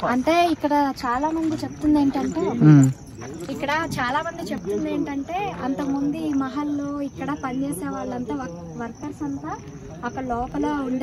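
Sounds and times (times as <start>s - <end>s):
woman talking: 0.0s - 2.8s, 3.5s - 11.0s.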